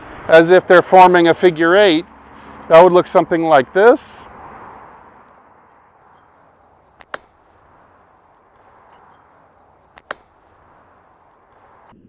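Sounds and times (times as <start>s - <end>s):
steady outdoor hiss: 0.0s - 12.0s
golf club striking ball: 4.6s - 7.6s, 8.8s - 10.5s.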